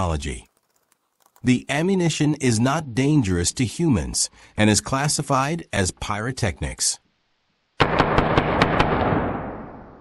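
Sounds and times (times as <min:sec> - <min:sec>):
sharp cracks: 0:07.8 - 0:10.0.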